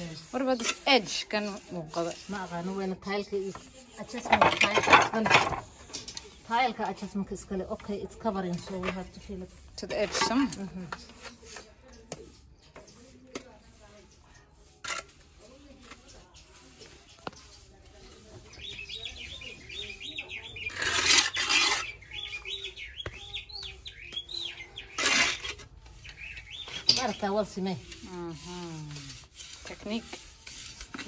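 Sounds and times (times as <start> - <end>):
trowel scraping wet mortar: 0.0 - 31.0
small bird chirping: 18.4 - 27.3.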